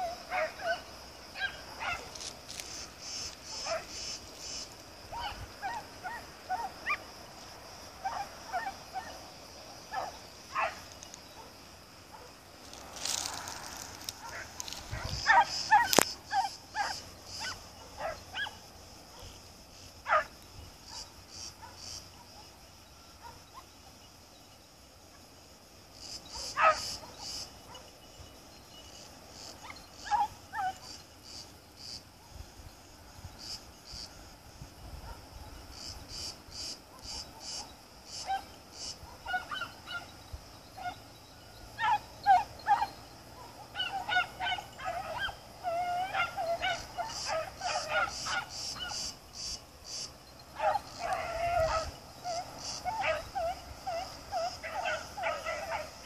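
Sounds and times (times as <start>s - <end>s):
hounds yelping: 0.0s - 2.2s, 3.5s - 4.0s, 5.1s - 7.0s, 8.0s - 9.2s, 9.9s - 11.5s, 14.1s - 19.4s, 20.0s - 20.3s, 26.3s - 27.9s, 29.5s - 31.0s, 36.9s - 49.2s, 50.3s - 56.0s
high insect buzz: 0.0s - 42.0s, 42.7s - 56.0s.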